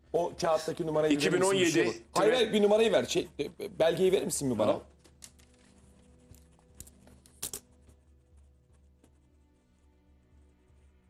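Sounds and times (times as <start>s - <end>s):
paper rustling: 4.9s - 7.7s.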